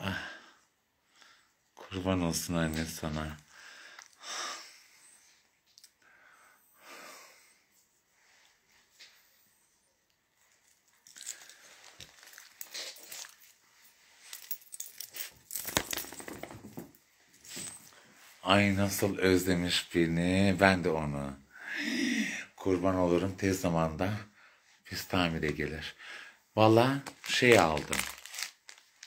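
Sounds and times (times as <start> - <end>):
clothing rustling: 10.3 - 19.0, 27.0 - 29.0
dog harness and fur handled: 10.5 - 17.9.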